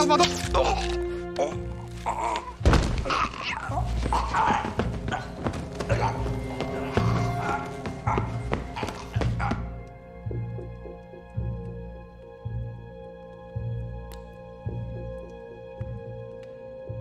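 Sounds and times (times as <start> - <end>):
dramatic film score: 0.0 - 17.0
repeated thuds: 2.6 - 3.2.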